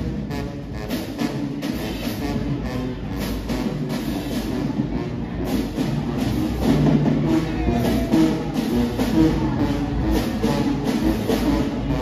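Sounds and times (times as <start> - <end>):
drums: 0.0 - 12.0
marching band brass: 0.0 - 12.0.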